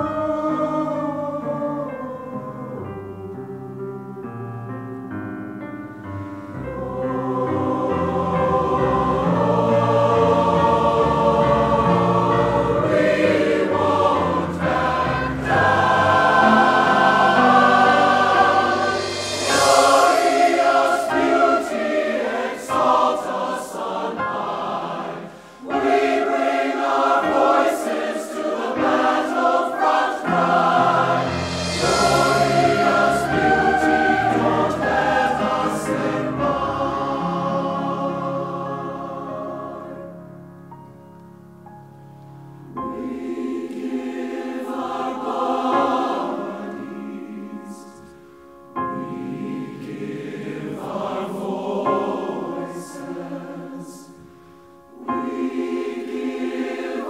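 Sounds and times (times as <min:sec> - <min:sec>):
mixed chorus singing: 0:00.0 - 0:04.3, 0:06.6 - 0:40.2, 0:42.8 - 0:57.0.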